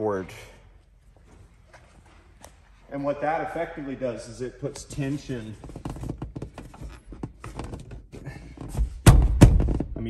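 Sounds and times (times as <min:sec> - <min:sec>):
heavy thunks: 0:08.6 - 0:10.0.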